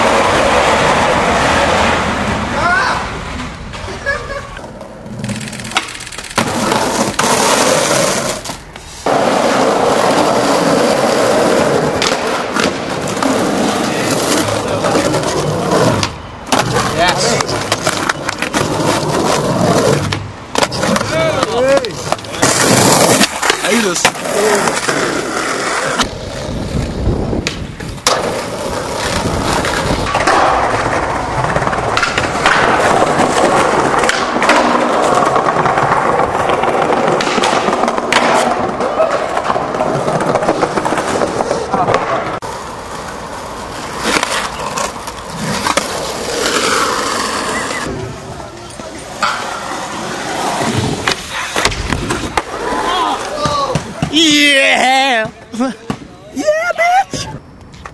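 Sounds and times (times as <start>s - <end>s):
skateboard wheels rolling on concrete: 0.0s - 57.9s
skateboards popping and landing: 0.0s - 57.9s.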